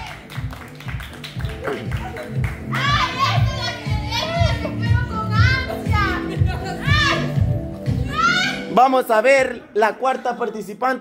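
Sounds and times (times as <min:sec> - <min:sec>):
background music with bass beat: 0:00.0 - 0:09.7
women squealing and whooping: 0:02.7 - 0:04.8, 0:08.0 - 0:08.7.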